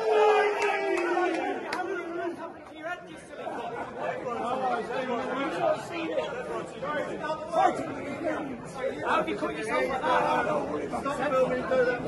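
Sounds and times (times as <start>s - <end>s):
men chattering: 1.0s - 12.0s.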